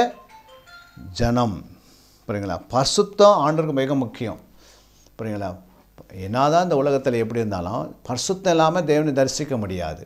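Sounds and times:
faint electronic tune: 0.0 - 1.9
man speaking: 1.0 - 4.5.

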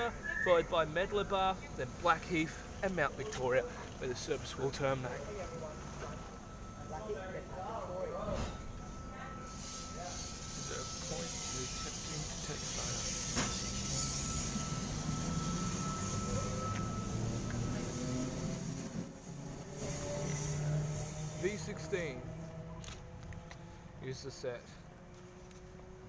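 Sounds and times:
electric train rumbling past: 0.0 - 26.0.

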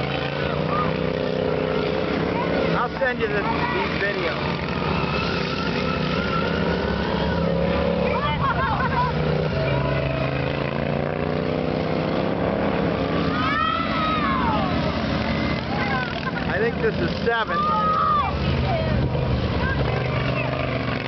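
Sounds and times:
racing lawn mower engines: 0.0 - 21.0.

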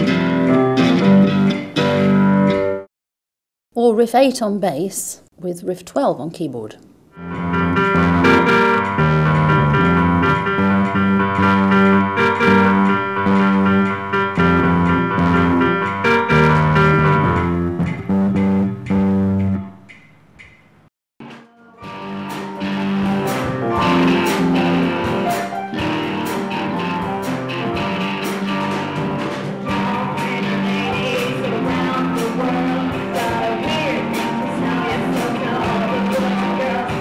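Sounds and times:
band with guitar and beat: 0.0 - 2.8, 7.2 - 19.5, 21.2 - 37.0
bass guitar and keyboard riffs: 0.0 - 2.8, 7.2 - 19.9, 21.2 - 37.0.

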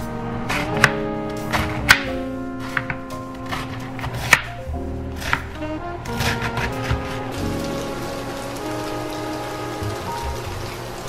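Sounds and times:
soft background music: 0.0 - 11.0
water boiling in a pan: 6.4 - 11.0.

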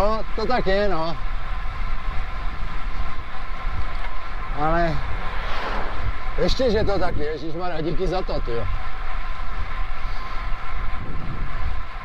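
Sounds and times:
tyres on asphalt: 0.0 - 12.0
wind on microphone: 4.9 - 7.4, 10.0 - 12.0.

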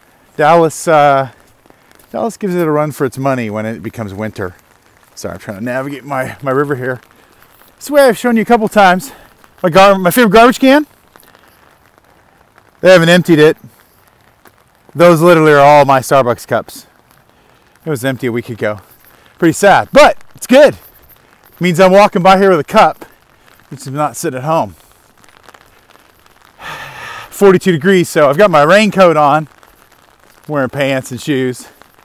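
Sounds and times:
light patter of rain: 0.0 - 32.0
man's voice: 0.4 - 1.3, 5.2 - 7.0, 19.4 - 20.8, 21.6 - 23.1, 23.7 - 24.8, 27.3 - 29.5, 30.5 - 31.7
man breathing in: 26.6 - 27.3.

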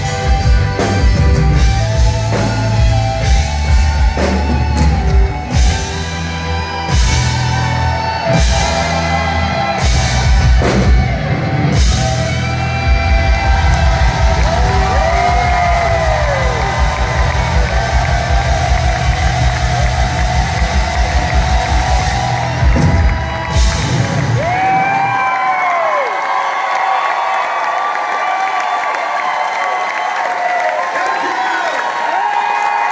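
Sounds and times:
live rock band playing: 0.0 - 25.4
crowd cheering and whooping: 0.0 - 32.9.

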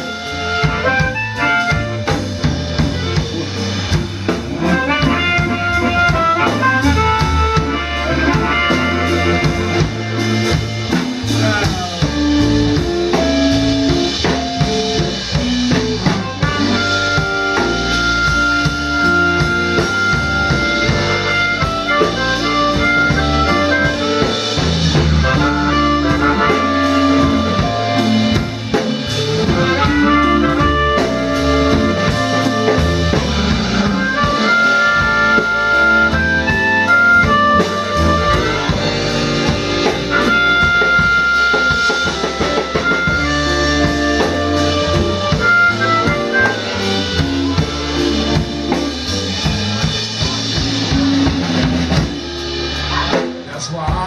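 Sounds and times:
harmonica solo: 0.0 - 53.2
blues band playing: 0.0 - 54.0.

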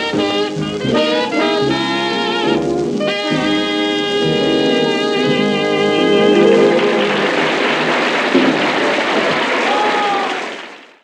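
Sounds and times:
studio audience applauding: 5.2 - 11.0.

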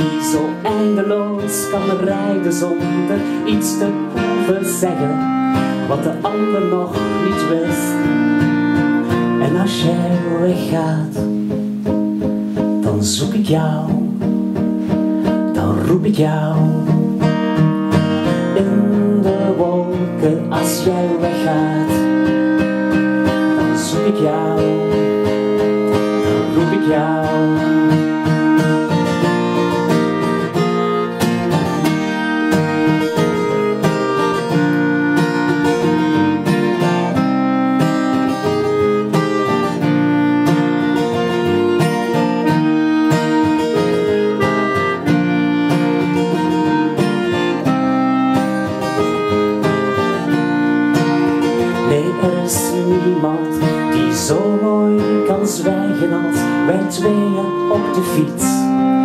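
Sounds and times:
clarinet long held notes: 0.0 - 11.2, 16.6 - 59.0
acoustic guitar strumming: 0.0 - 59.0.

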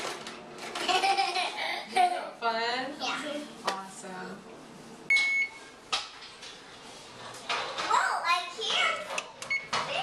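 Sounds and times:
oven timer beep: 5.1 - 5.7, 9.4 - 9.8.

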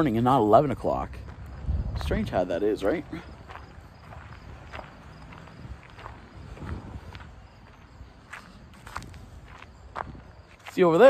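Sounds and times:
footsteps on pavement: 0.0 - 11.0
wind rumble on microphone: 1.3 - 2.4, 3.3 - 10.6.

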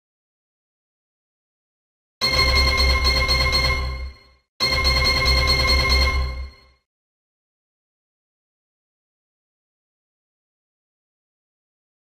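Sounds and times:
electronic slot game effect: 2.2 - 6.7.

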